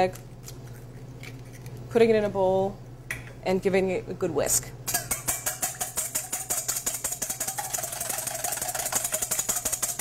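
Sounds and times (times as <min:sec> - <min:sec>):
whisk clicking in metal bowl: 0:04.9 - 0:10.0.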